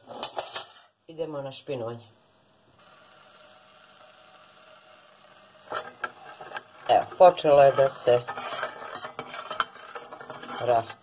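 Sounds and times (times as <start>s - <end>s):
faint steady hum: 0.0s - 11.0s
metal spoon scraping steel pot: 5.7s - 11.0s.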